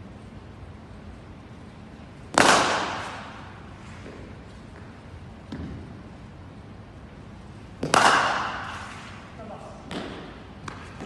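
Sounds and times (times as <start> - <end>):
cricket bat striking ball: 2.3 - 3.5, 7.8 - 8.9.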